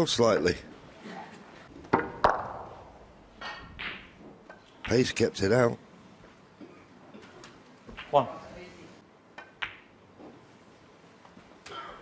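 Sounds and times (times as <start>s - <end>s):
cue tip striking ball: 1.9s - 2.8s
snooker balls clicking: 9.3s - 10.3s.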